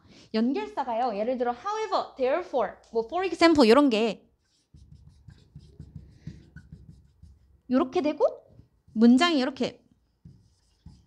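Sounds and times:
marker scratching on whiteboard: 0:03.6 - 0:11.0.

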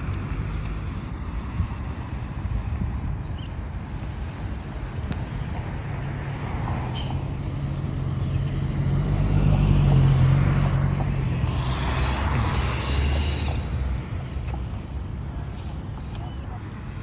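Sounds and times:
vehicle engine drone: 0:00.0 - 0:17.0.

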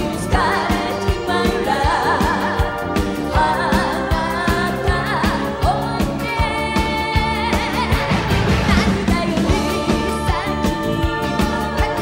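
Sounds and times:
band accompaniment with drum beat: 0:00.0 - 0:12.0
woman singing into a microphone: 0:00.0 - 0:12.0.

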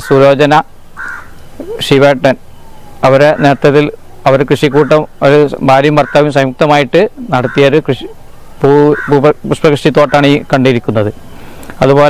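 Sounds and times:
crow cawing: 0:00.0 - 0:01.7, 0:02.8 - 0:04.0, 0:04.6 - 0:05.2, 0:05.9 - 0:06.4, 0:07.4 - 0:07.9, 0:08.8 - 0:09.3, 0:10.0 - 0:10.4
man speaking: 0:01.6 - 0:02.4, 0:03.0 - 0:11.2, 0:11.8 - 0:12.0.

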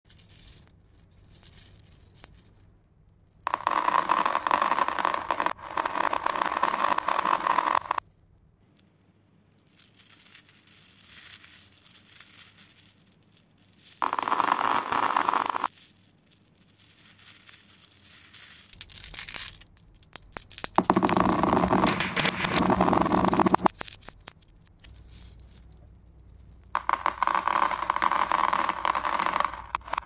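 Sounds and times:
plastic beads clattering in hands: 0:00.1 - 0:08.4, 0:09.5 - 0:30.0.

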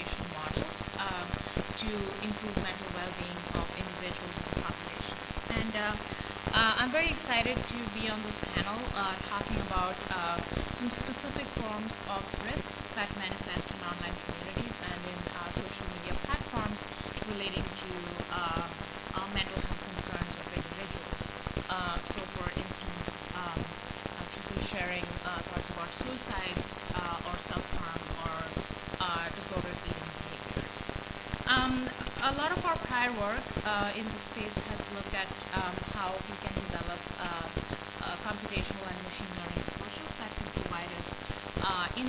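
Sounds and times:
broken speech: 0:00.0 - 0:30.8, 0:31.5 - 0:42.0
crackle and hiss: 0:00.0 - 0:42.0
woman speaking into a microphone: 0:00.0 - 0:42.0.

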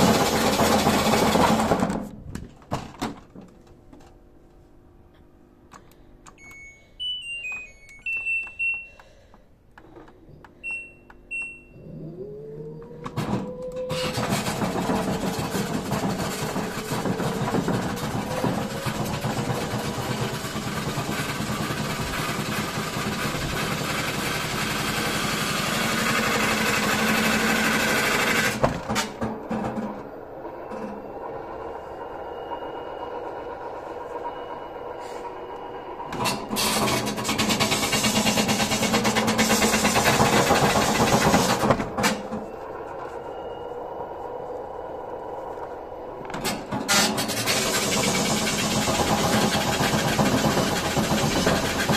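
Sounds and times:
washing machine drum spinning: 0:00.0 - 0:03.5, 0:12.8 - 0:51.9
control panel beeps: 0:06.3 - 0:09.1, 0:10.6 - 0:12.0.

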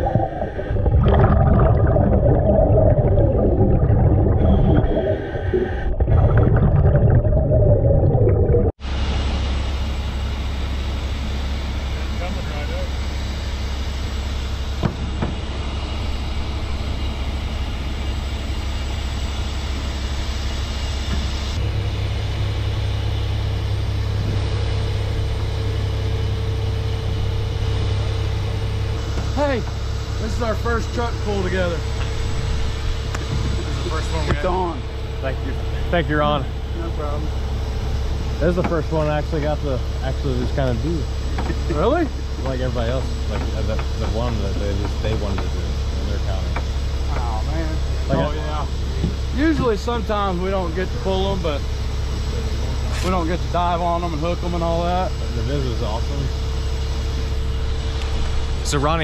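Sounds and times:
underwater rumble and bubbling: 0:00.0 - 0:08.8, 0:14.8 - 0:19.9, 0:21.5 - 0:47.0
crane winch hum: 0:06.9 - 0:59.0
truck engine running: 0:08.9 - 0:59.0.

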